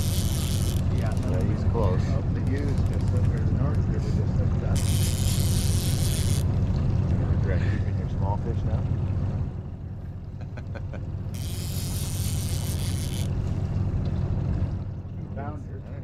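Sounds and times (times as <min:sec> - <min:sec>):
boat motor humming: 0:00.0 - 0:16.0.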